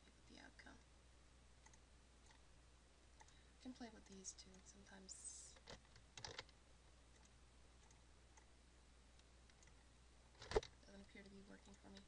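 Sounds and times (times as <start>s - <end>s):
low steady hum: 0.0s - 12.0s
faint clicks: 3.2s - 3.4s.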